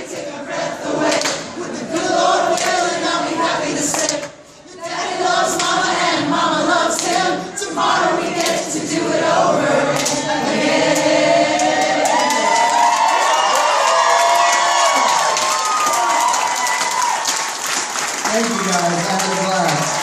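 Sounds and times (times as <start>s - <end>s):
people clapping: 0.0s - 4.2s, 4.9s - 6.1s, 6.8s - 20.0s
audience singing together: 0.0s - 15.0s
crowd cheering: 10.0s - 20.0s.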